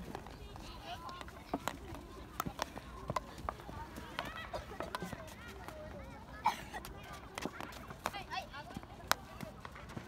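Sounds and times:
hockey sticks tapping ball: 0.0s - 5.9s, 6.8s - 10.0s.

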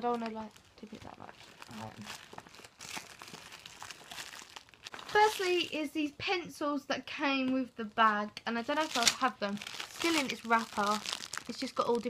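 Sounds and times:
plastic wrapping crinkling: 0.0s - 5.8s, 8.7s - 12.0s.

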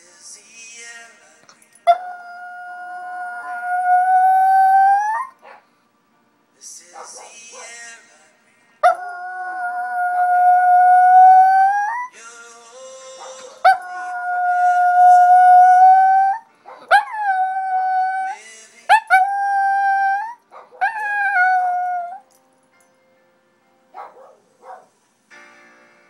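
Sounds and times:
music: 0.0s - 26.0s
dog howling: 1.9s - 5.4s, 8.8s - 12.1s, 13.2s - 22.2s.

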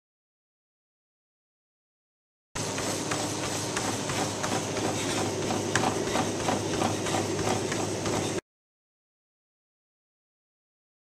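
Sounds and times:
runner's quick footfalls: 2.6s - 8.4s
treadmill motor and belt hum: 2.6s - 8.4s.

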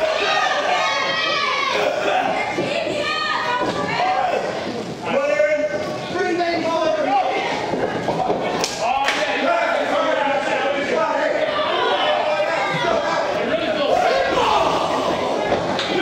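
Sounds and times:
crowd shouting: 0.0s - 4.6s, 8.8s - 16.0s.

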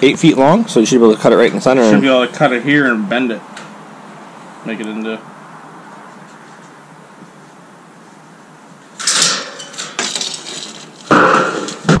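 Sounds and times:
metal framing clattering: 9.0s - 12.0s.

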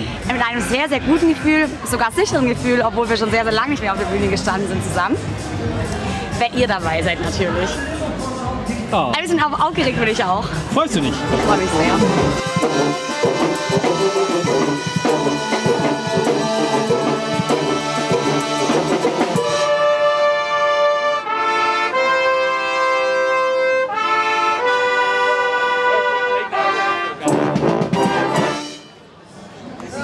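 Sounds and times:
wind band playing: 9.3s - 29.2s
drum beat: 9.6s - 19.7s, 27.2s - 28.6s.

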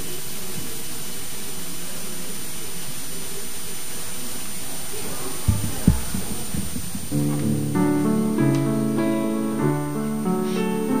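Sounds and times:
steady background hiss: 0.0s - 11.0s
dull low thumps: 5.4s - 8.2s.

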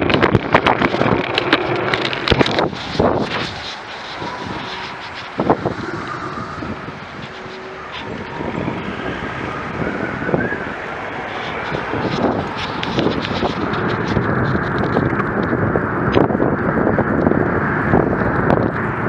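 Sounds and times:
wind rushing over microphone: 0.0s - 19.0s.

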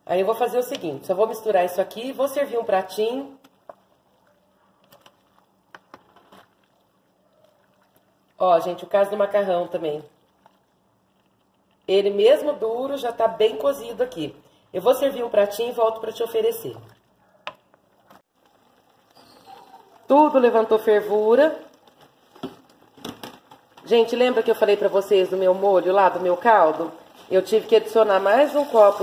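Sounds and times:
broth simmering: 0.7s - 29.0s.

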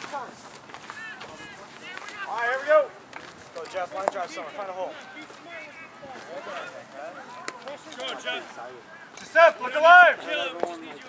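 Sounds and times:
players calling and chattering: 0.0s - 11.0s.

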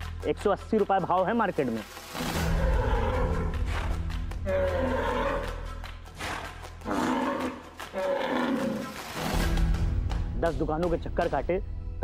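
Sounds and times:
background music with low bass: 0.0s - 12.0s
bull bellowing: 4.5s - 5.6s, 6.2s - 9.0s.

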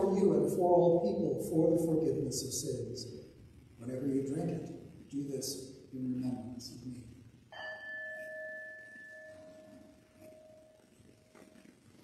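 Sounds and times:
small altar bell ringing: 7.5s - 10.8s.

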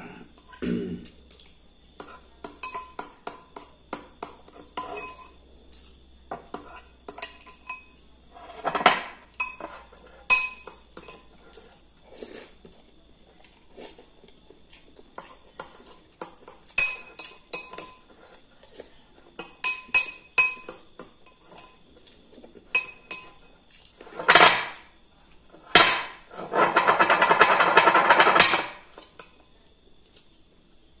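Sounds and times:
metal spoon clinking on ceramic bowl: 1.3s - 5.4s, 6.3s - 11.3s, 15.2s - 18.0s, 19.4s - 21.8s, 22.7s - 23.5s, 26.8s - 29.4s.

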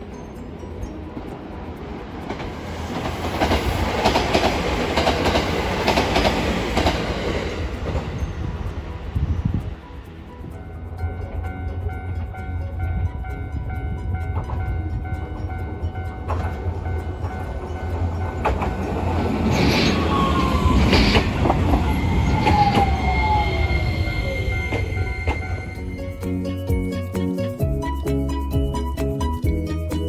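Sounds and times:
tram rumbling on rails: 0.0s - 30.0s.

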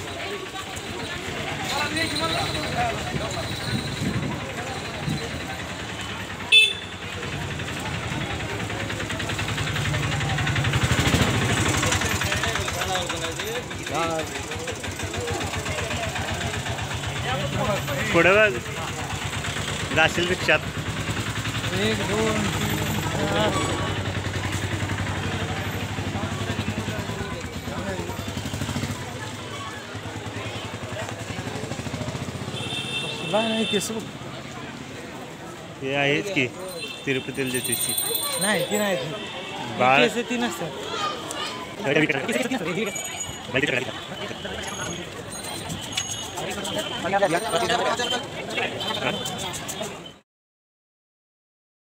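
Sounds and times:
small engine running: 0.0s - 33.8s
busy street noise: 0.0s - 50.2s
people talking: 0.0s - 50.2s.

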